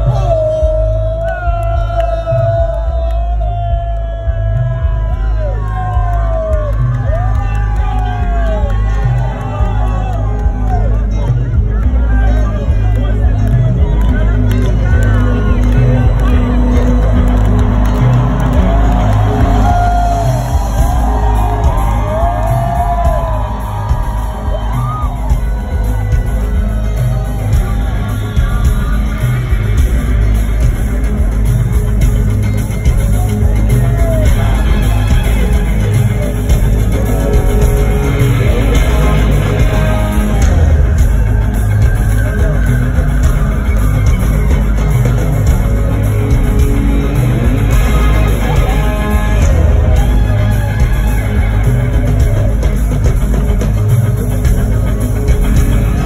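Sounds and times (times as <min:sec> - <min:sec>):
heavy bass: 0:00.0 - 0:56.0
live rock band playing loudly: 0:03.9 - 0:56.0.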